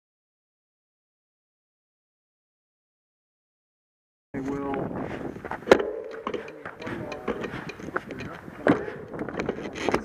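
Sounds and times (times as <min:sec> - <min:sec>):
people talking indistinctly: 0:04.4 - 0:10.0
sharp knocks: 0:05.7 - 0:07.8.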